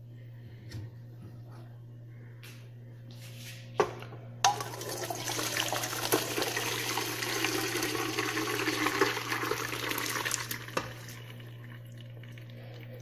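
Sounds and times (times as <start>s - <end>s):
water pouring into a vessel: 4.5s - 13.0s.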